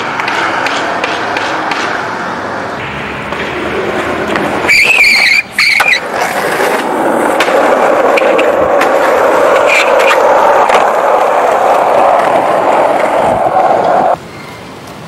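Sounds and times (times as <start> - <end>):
skateboard wheels rolling on asphalt: 0.0 - 15.0
metal squealing on metal: 4.7 - 6.0.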